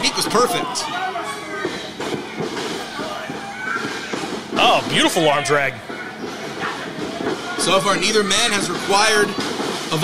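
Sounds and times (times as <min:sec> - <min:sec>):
crowd murmur and chatter: 0:00.0 - 0:10.0.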